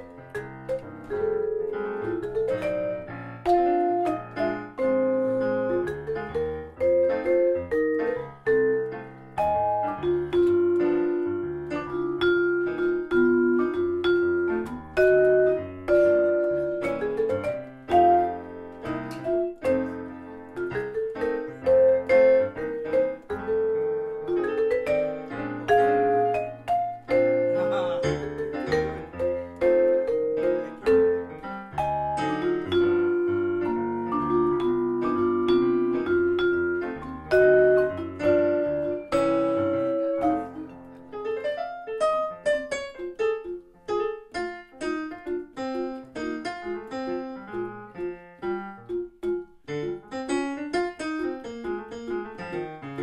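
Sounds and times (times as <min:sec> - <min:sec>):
digital piano: 0:00.0 - 0:53.0
vibraphone jazz melody: 0:00.0 - 0:53.0.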